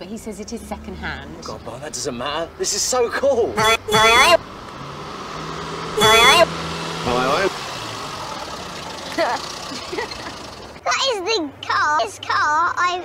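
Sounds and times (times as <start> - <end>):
small car engine humming: 0.0 - 10.8.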